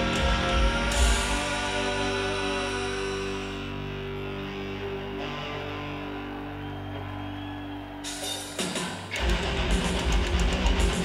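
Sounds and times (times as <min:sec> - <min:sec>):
electric guitar sustained chord: 0:00.0 - 0:07.6.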